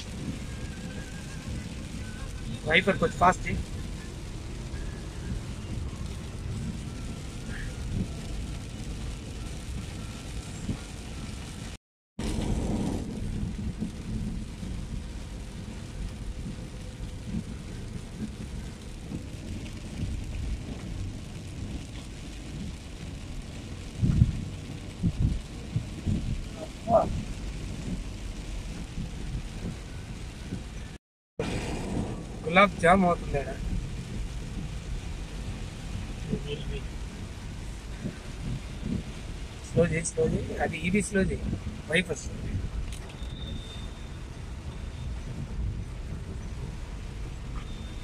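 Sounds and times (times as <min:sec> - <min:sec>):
engine and tyres on wet road: 0:00.0 - 0:48.0.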